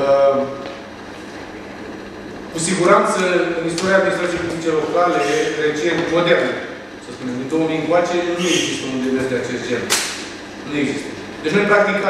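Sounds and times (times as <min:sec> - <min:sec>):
man saying uh: 0:02.6 - 0:06.5, 0:07.1 - 0:09.9.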